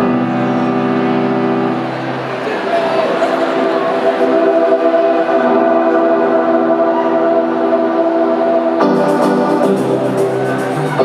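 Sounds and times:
sustained synthesizer chord: 0.0s - 11.0s.

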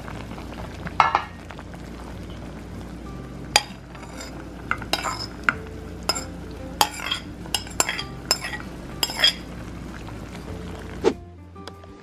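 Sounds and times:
low steady hum: 0.0s - 12.0s
metal ladle clinking against pot: 3.6s - 5.5s, 6.1s - 9.4s.

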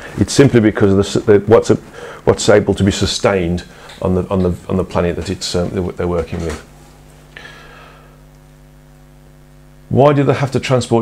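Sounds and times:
man speaking: 0.0s - 6.7s, 9.9s - 11.0s
electrical mains hum: 0.0s - 11.0s.

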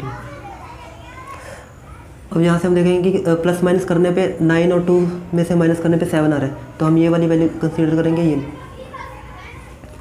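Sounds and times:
children playing and calling: 0.0s - 2.3s, 4.0s - 10.0s.

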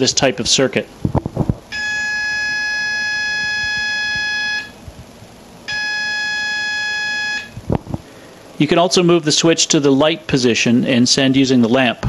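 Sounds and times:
buzzy oscillator tone: 0.0s - 10.3s.

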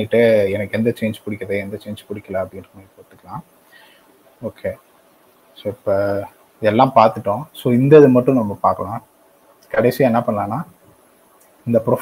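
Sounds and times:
man speaking over video call: 0.0s - 3.6s, 4.4s - 4.9s, 5.6s - 10.8s, 11.6s - 12.0s.

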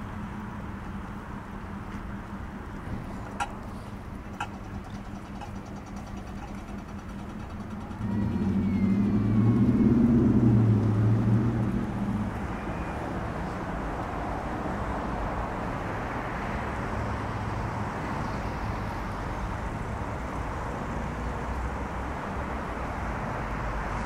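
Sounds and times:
car tyre noise passing: 0.0s - 24.0s
low vehicle engine hum: 0.0s - 24.0s
street traffic: 0.0s - 24.0s.

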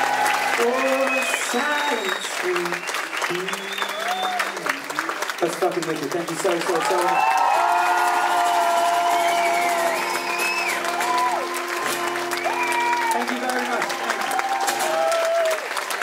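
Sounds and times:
crowd whooping and cheering: 0.0s - 5.1s, 6.7s - 16.0s
audience applause: 0.0s - 16.0s.

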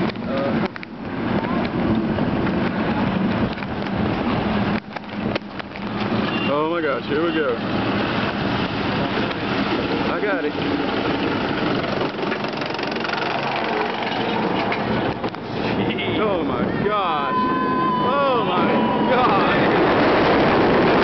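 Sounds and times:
wind on microphone: 0.0s - 21.0s
roller coaster train running: 7.0s - 21.0s
riders screaming: 16.6s - 20.1s.

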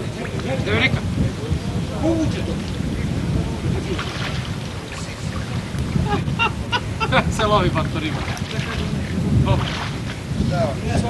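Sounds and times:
faint voices: 0.0s - 11.0s
steady low rumble: 0.0s - 11.0s
water sloshing around waders: 2.2s - 10.4s.

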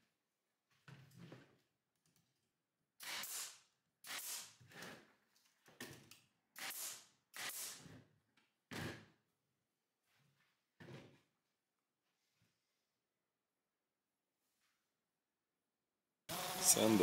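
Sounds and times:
pneumatic nailer shots: 3.0s - 4.6s, 6.6s - 7.9s.

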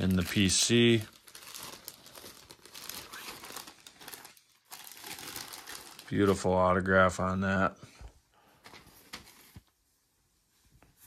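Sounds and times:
plastic bag crinkling: 0.0s - 6.6s.

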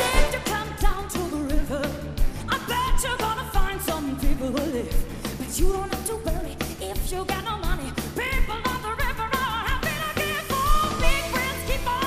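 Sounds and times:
live band playing pop music: 0.0s - 12.0s.

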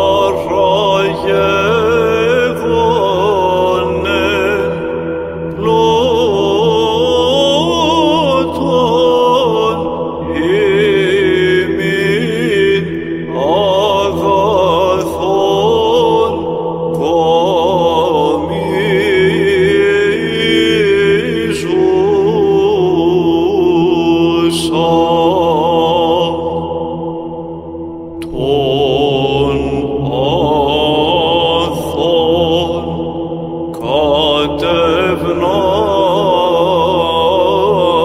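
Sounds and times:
person chanting melismatic line: 0.0s - 26.6s, 28.2s - 33.0s, 33.7s - 38.0s
low held drone: 0.0s - 38.0s.

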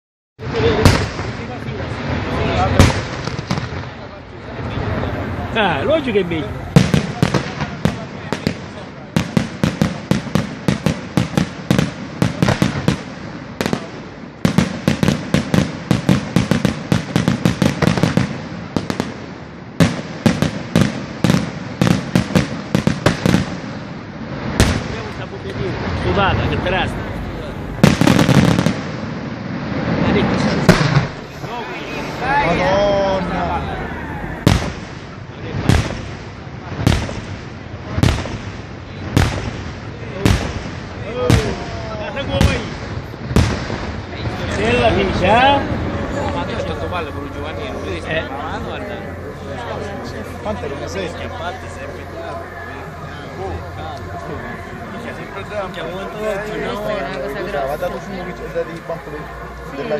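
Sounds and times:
fireworks bursting with bangs: 0.4s - 32.6s, 33.8s - 59.9s
steady noisy background: 0.4s - 59.9s
firework shell bang: 30.4s - 31.5s.

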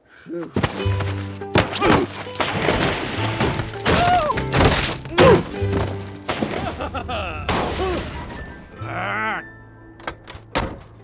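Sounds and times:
sharp thuds: 0.6s - 8.6s
cartoon music with low bass: 0.6s - 11.0s.

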